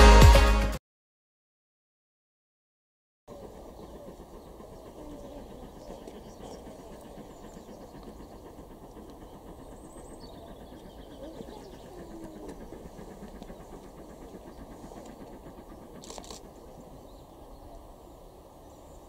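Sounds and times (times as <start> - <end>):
distant voices: 3.3 - 19.0
low background rumble: 3.3 - 19.0.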